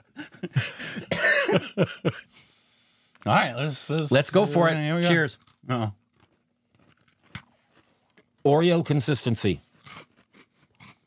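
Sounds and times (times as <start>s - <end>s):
biscuit chewing: 5.4s - 8.4s, 9.7s - 11.0s.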